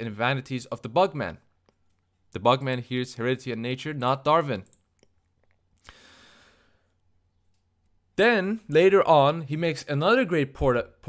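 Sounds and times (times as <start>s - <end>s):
soft airy exhale: 5.8s - 6.9s.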